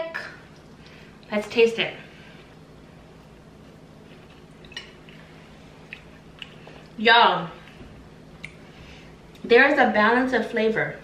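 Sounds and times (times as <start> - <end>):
low steady hum: 0.0 - 11.0
person chewing food: 3.6 - 7.0.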